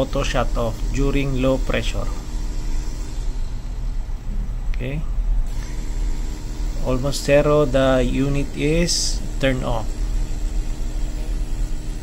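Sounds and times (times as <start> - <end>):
compressor humming: 0.0 - 12.0.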